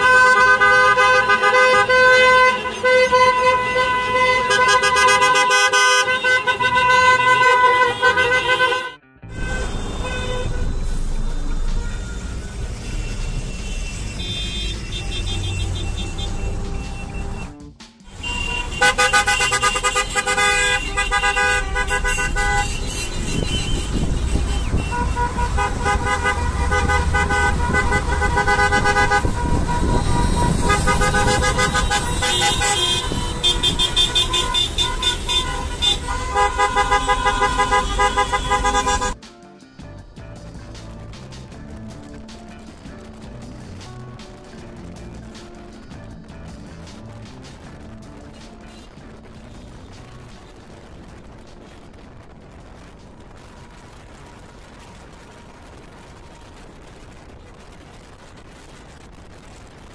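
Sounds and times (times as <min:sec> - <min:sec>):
car horns honking: 0:00.0 - 0:39.2
car engines running: 0:09.3 - 0:39.2, 0:40.4 - 0:59.9.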